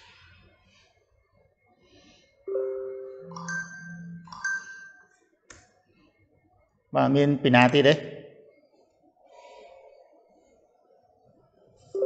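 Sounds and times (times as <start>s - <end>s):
computer notification ding: 2.5s - 4.9s.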